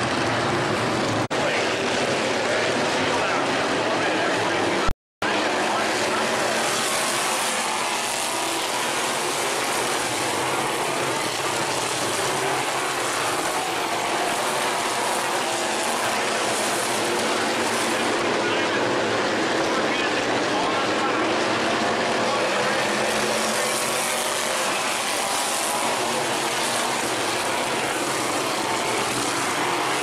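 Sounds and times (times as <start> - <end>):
stock car engines racing: 0.0 - 30.0.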